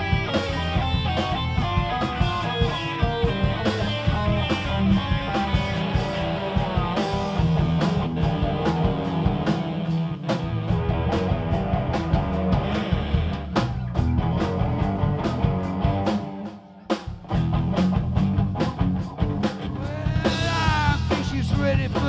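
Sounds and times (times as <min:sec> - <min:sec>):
bass guitar: 0:00.0 - 0:22.0
electric guitar: 0:00.0 - 0:22.0.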